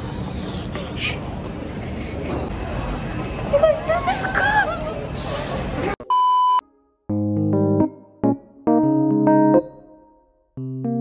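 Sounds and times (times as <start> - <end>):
shopping mall background noise: 0.0 - 6.0.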